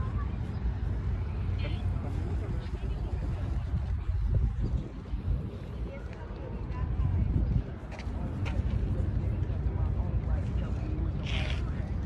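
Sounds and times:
faint distant voices: 0:00.0 - 0:12.0
steady low rumble: 0:00.0 - 0:12.0.

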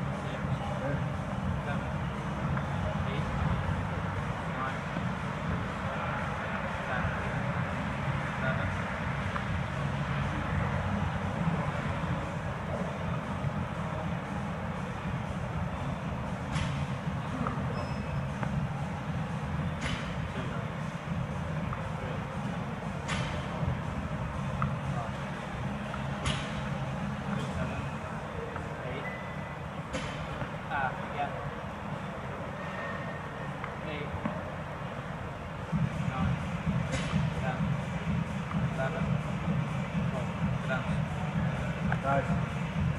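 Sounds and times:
distant indistinct voices: 0:00.0 - 0:42.9
gym hall rumble and hiss: 0:00.0 - 0:42.9.

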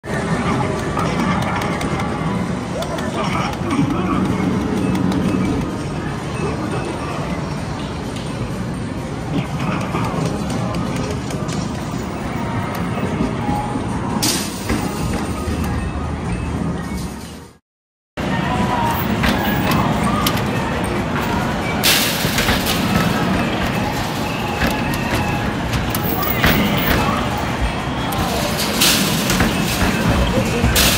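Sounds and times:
arcade game machines din: 0:00.0 - 0:17.6, 0:18.2 - 0:30.9.

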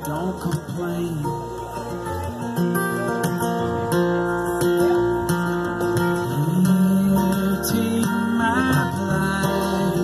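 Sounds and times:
acoustic guitar: 0:00.0 - 0:10.0.

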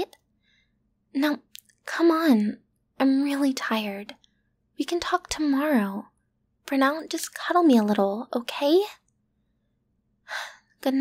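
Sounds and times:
woman speaking softly: 0:10.8 - 0:11.0.

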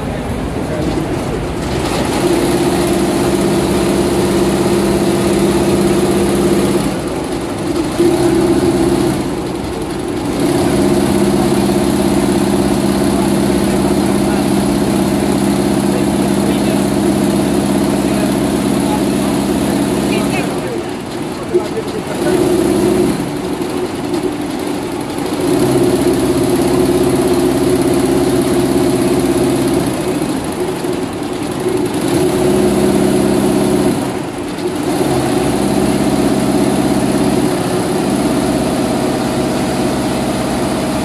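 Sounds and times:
embroidery machine humming: 0:00.0 - 0:41.0.

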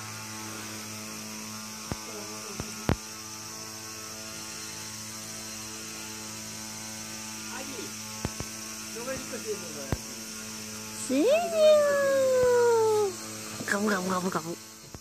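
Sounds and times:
sharp clicks: 0:08.2 - 0:08.6.

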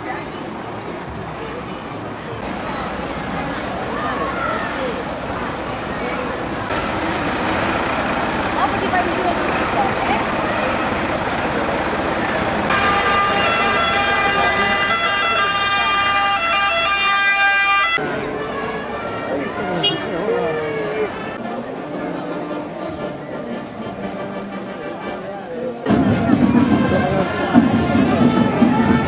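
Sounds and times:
crowd chatter: 0:00.0 - 0:29.0
vehicle engines passing: 0:00.0 - 0:29.0
vehicle siren stepped tones: 0:06.7 - 0:18.1.

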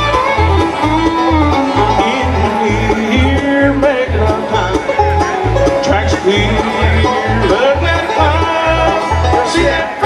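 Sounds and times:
bluegrass band playing: 0:00.0 - 0:10.0
low bass beat: 0:00.0 - 0:10.0.

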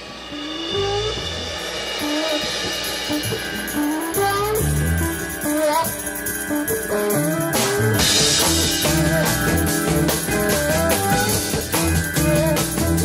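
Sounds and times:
bass and drums: 0:00.0 - 0:13.0
blues rock guitar: 0:00.0 - 0:13.0.

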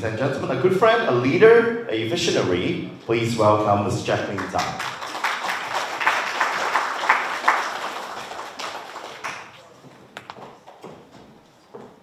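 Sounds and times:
audience applause: 0:04.4 - 0:09.8.

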